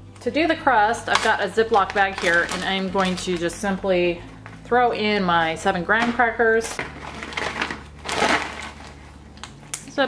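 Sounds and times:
plastic bag crinkling: 1.0 - 4.6, 6.0 - 9.2.

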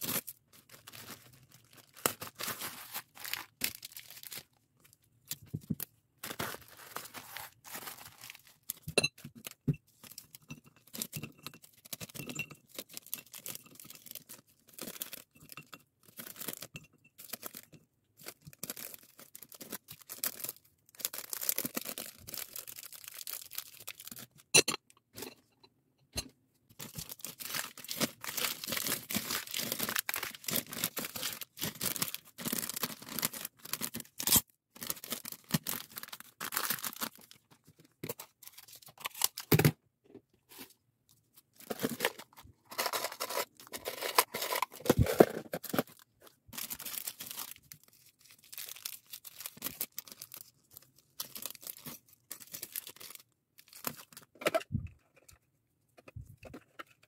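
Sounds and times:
plastic bags rustling: 0.0 - 10.2, 18.2 - 24.3, 26.8 - 34.2, 34.8 - 37.5, 41.6 - 50.6.

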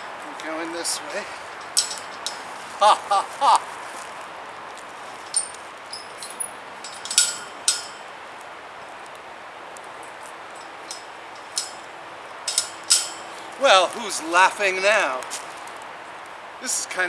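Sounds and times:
wire panel clinking against metal posts: 0.3 - 3.0, 4.7 - 15.8.

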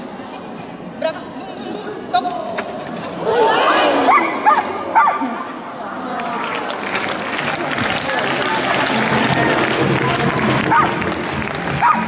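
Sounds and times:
dog barking high-pitched: 4.1 - 5.2, 11.8 - 12.0.

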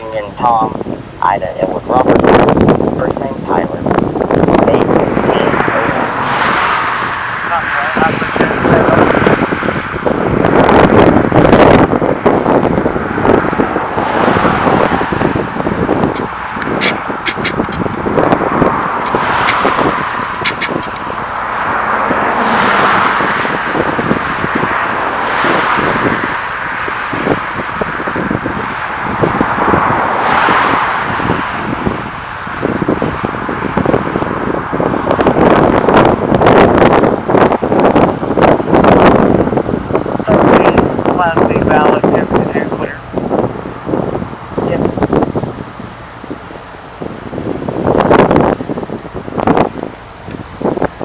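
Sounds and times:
vehicles passing: 0.0 - 51.0.

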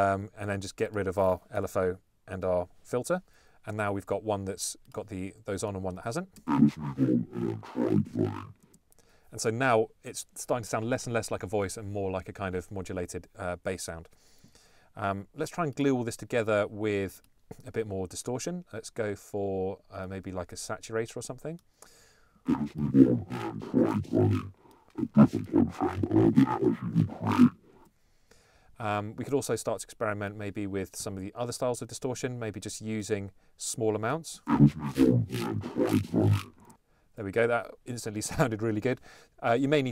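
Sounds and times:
distorted voice-like bass: 6.5 - 8.5, 22.5 - 27.6, 34.5 - 36.6.

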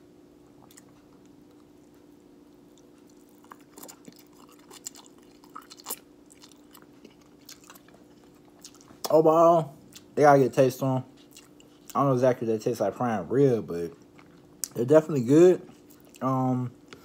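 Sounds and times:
chewing and slurping noodles: 2.7 - 9.1, 11.1 - 12.0, 13.9 - 14.7, 15.6 - 16.2.

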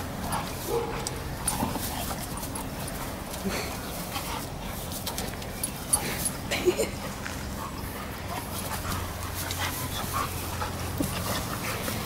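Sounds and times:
dogs panting: 0.0 - 12.0.

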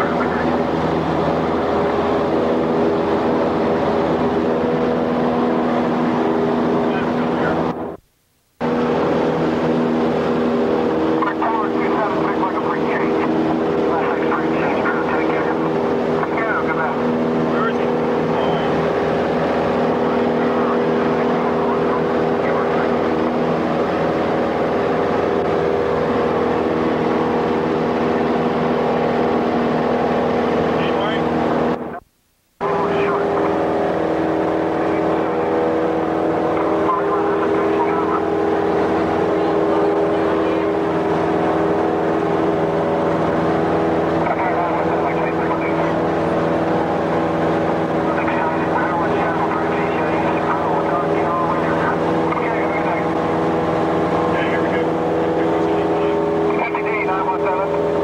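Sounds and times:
aircraft engine and propeller droning: 0.0 - 8.0, 8.6 - 32.0, 32.6 - 58.0.

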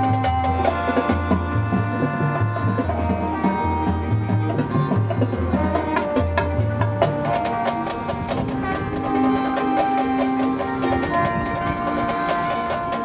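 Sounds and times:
marching band playing: 0.0 - 13.0
percussion strokes: 0.0 - 13.0.

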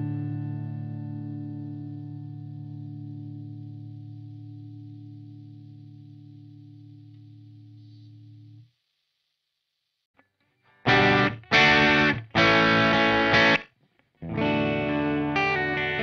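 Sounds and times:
electric guitar chord ringing: 10.8 - 13.6, 14.2 - 16.0.

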